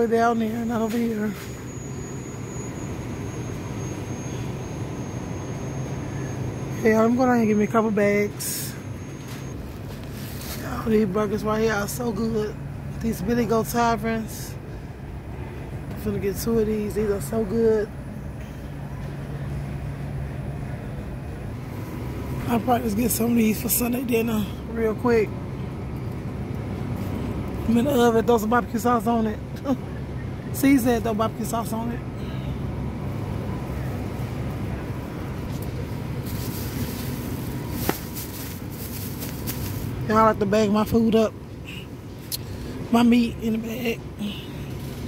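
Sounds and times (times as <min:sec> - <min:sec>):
low hum with rumble: 0:00.0 - 0:45.0
plastic bag rustling: 0:36.1 - 0:40.0.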